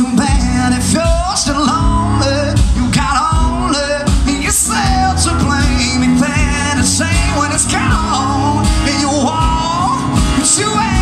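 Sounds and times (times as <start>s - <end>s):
drum beat: 0.0s - 11.0s
man singing with vibrato: 0.0s - 11.0s
strummed acoustic guitar: 0.0s - 11.0s.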